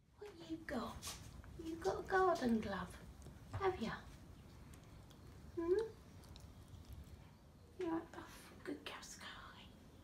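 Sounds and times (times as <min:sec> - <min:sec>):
person whispering: 0:08.1 - 0:09.8.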